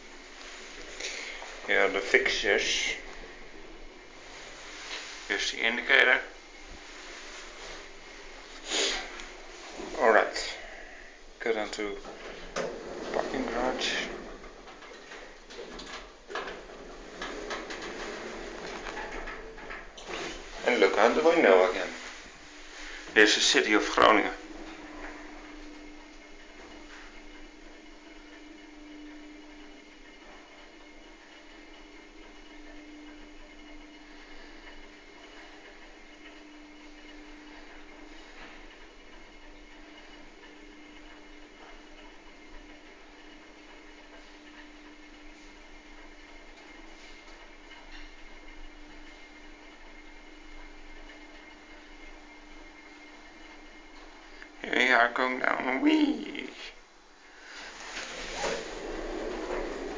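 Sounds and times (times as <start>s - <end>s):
elevator low hum: 0.0s - 59.9s.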